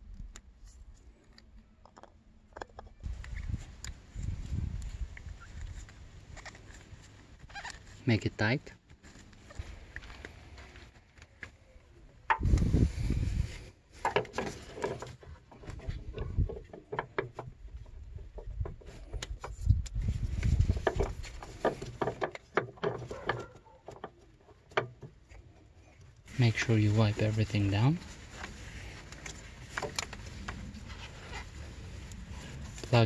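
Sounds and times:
gloved hands handling metal parts: 0.1s - 33.0s.

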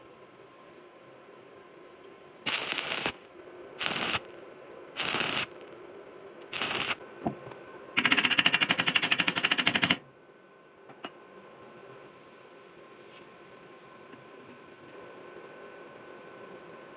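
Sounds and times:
welding arc crackle: 2.5s - 4.4s, 5.0s - 5.8s, 6.4s - 7.0s.

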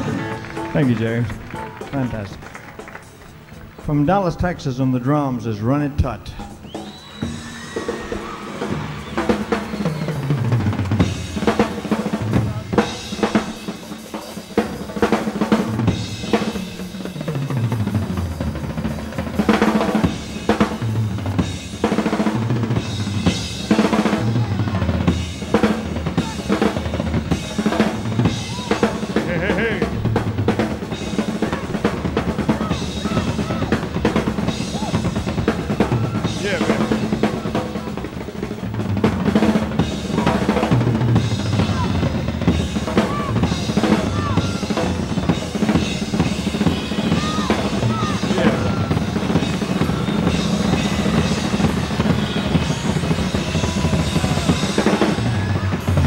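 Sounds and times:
drum kit solo: 5.7s - 56.0s.

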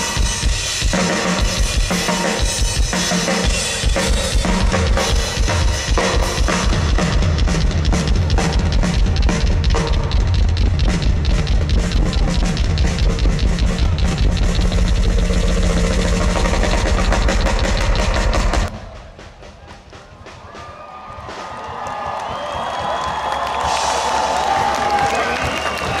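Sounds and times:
rock drum solo: 0.0s - 25.0s
crowd cheering: 0.0s - 26.0s.

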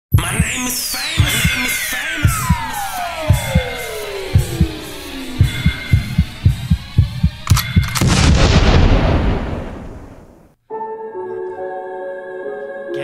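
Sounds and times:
falling pitch sweep: 1.2s - 7.0s
low thumps: 1.2s - 10.5s
sharp hit: 1.2s - 10.5s.

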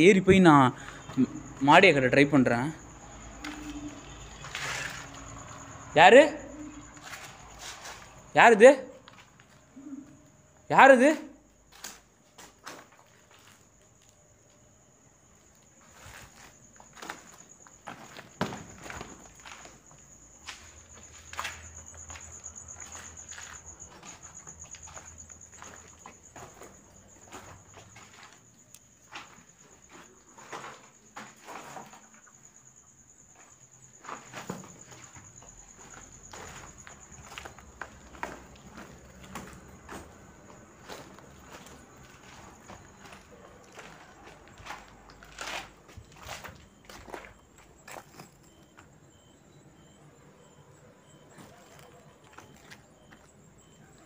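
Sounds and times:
footsteps on debris: 6.9s - 8.3s, 11.7s - 14.6s, 15.4s - 32.1s, 33.3s - 48.9s.

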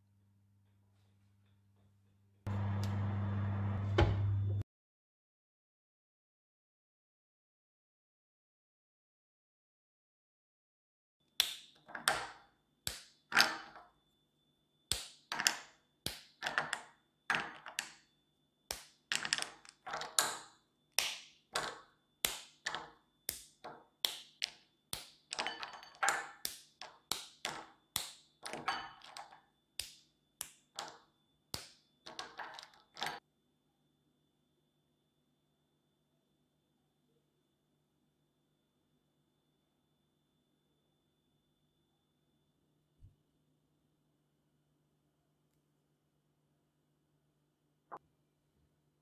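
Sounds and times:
chocolate snapping: 11.3s - 12.3s, 14.9s - 18.0s, 18.7s - 33.1s.

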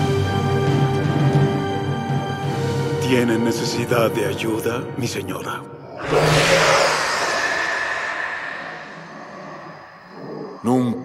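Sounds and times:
loud rushing whoosh: 5.8s - 10.8s.

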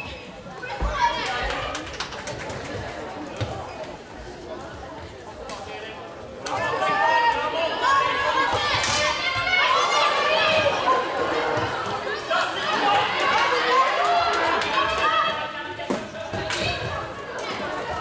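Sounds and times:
players calling out and chattering: 0.0s - 18.0s.

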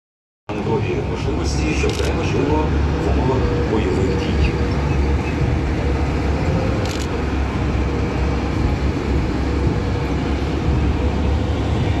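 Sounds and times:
armoured vehicles rumbling past: 0.5s - 12.0s
faint engine whine: 0.5s - 12.0s.

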